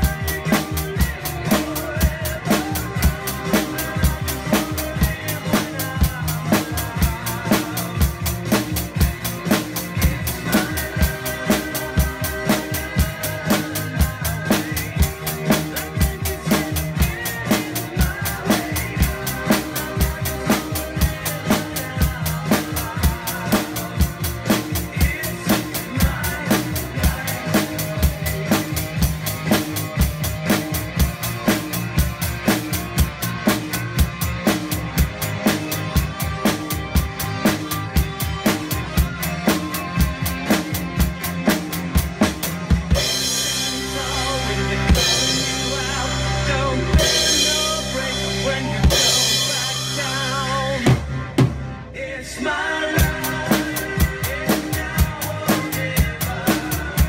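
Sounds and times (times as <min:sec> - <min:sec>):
drum kit playing a steady beat: 0:00.0 - 0:51.9, 0:52.8 - 0:57.0
recorded song: 0:00.0 - 0:57.0.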